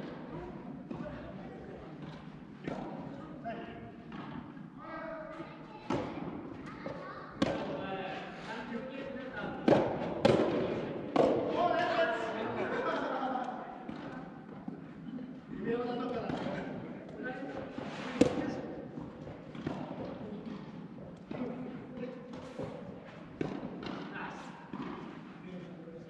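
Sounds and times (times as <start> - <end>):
rackets hitting ball: 2.0 - 3.1, 7.4 - 7.8, 9.4 - 11.7, 16.0 - 25.3.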